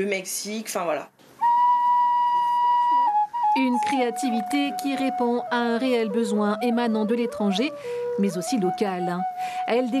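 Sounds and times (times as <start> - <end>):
flute holding long note: 1.4 - 10.0.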